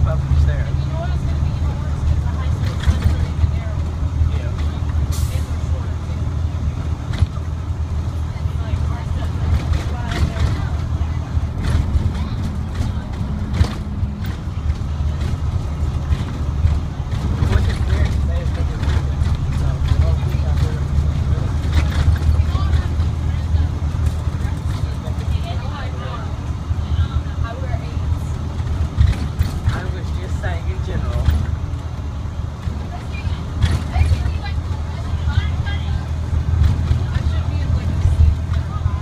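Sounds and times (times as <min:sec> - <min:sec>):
bus diesel engine running: 0:00.0 - 0:39.0.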